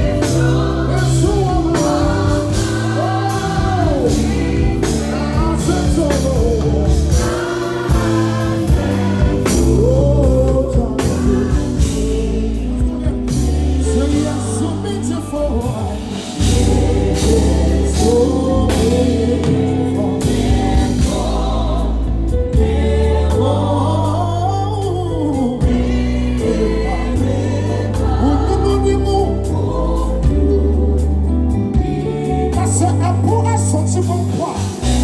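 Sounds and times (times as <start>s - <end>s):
bass: 0.0s - 35.0s
drum kit: 0.0s - 35.0s
keyboards: 0.0s - 35.0s
lead and backing vocals: 0.0s - 35.0s.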